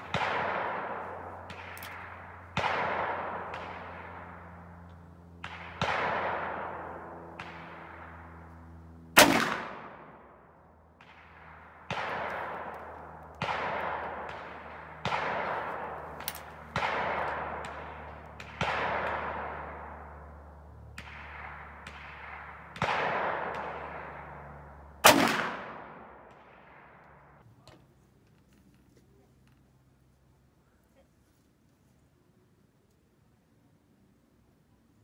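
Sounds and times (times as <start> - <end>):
revolver shots echoing: 0.0 - 8.4, 9.2 - 10.2, 11.0 - 26.4
quieter sharp gunshot reports: 0.0 - 27.4.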